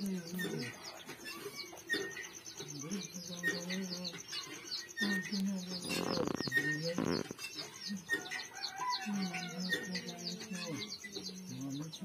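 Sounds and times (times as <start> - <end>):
chickens clucking: 0.0 - 12.0
small birds chirping: 0.0 - 12.0.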